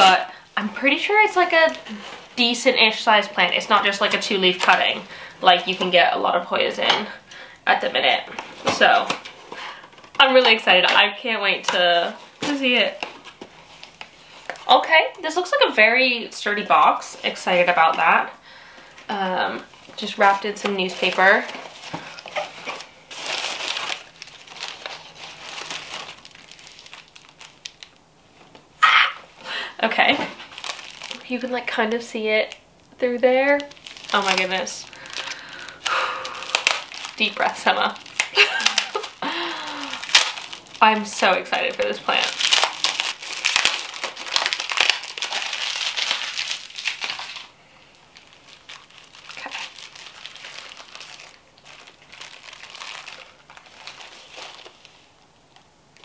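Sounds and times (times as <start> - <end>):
crumpled newspaper crackling: 0.0 - 28.7, 29.3 - 56.0
bubble wrap crinkling: 0.0 - 56.0.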